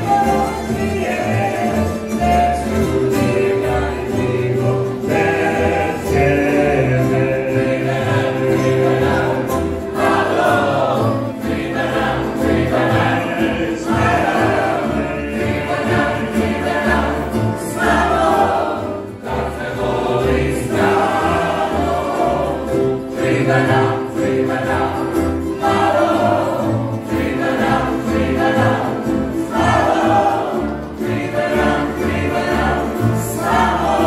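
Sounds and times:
people singing along: 0.0 - 34.0
plucked strings orchestra: 0.0 - 34.0.

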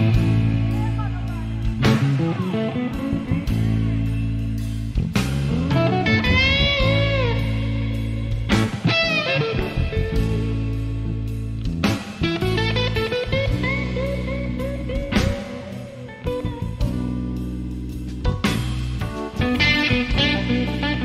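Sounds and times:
band backing chords: 0.0 - 21.0
electric guitar blues lead: 0.0 - 21.0.

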